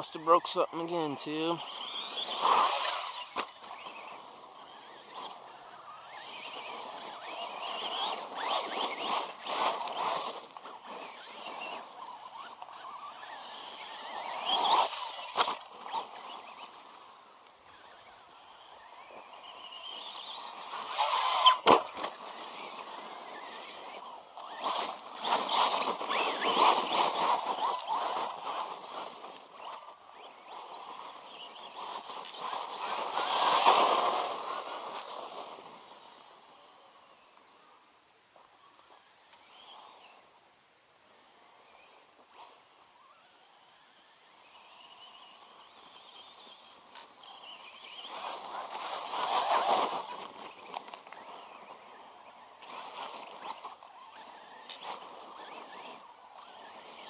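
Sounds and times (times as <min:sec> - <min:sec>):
rc truck motor whining: 0:00.0 - 0:37.8, 0:38.4 - 0:40.4, 0:41.0 - 0:57.0.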